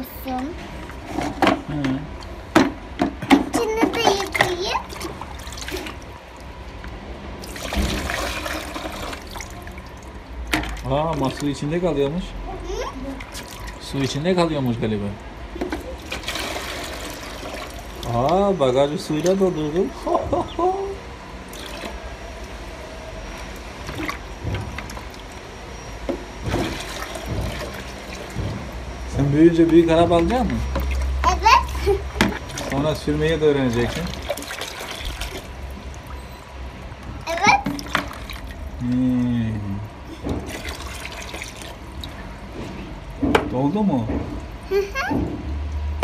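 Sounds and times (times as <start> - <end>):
water splashes and knocks: 0.0 - 20.6, 21.4 - 46.0
water sloshing in plastic tub: 0.6 - 20.6, 21.2 - 46.0.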